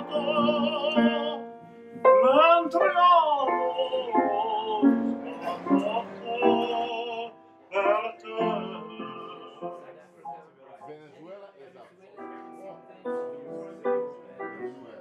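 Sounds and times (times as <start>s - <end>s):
classical solo singing: 0.0s - 10.0s
piano accompaniment: 0.0s - 11.2s, 12.1s - 15.0s.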